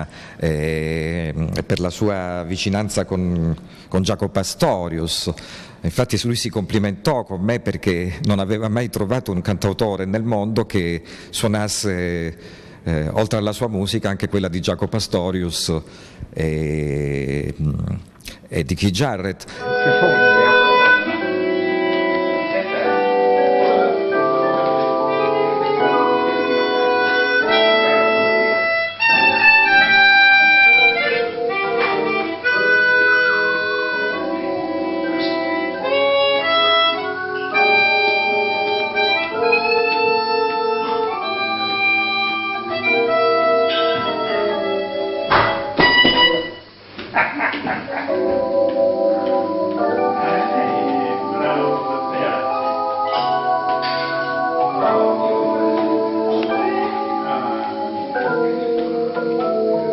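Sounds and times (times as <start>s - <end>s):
keyboard chords: 19.5s - 46.8s, 47.8s - 59.9s
harmonica playing jazz melody: 19.6s - 46.9s, 48.0s - 59.9s.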